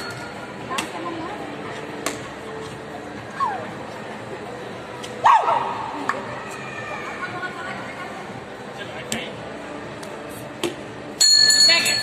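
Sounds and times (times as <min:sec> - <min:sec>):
background hubbub: 0:00.0 - 0:12.0.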